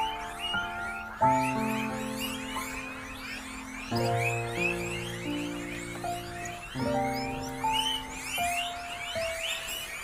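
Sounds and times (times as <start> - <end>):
background music with long notes: 0.0 - 10.0
guinea pigs squeaking: 0.0 - 10.0.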